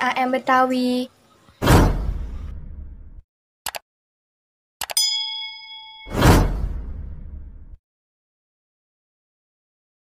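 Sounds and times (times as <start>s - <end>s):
notification bell ding: 4.9s - 6.5s.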